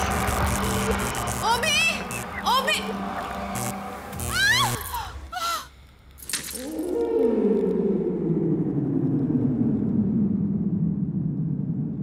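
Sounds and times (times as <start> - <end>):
eerie low drone sliding downward: 6.6 - 12.0.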